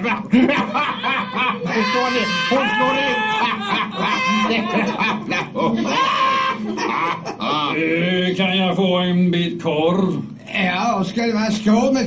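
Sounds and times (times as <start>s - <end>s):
cartoon voices laughing: 0.0s - 7.8s.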